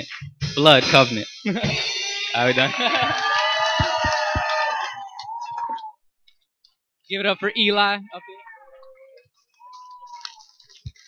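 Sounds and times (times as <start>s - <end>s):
person whooping: 2.4s - 6.0s.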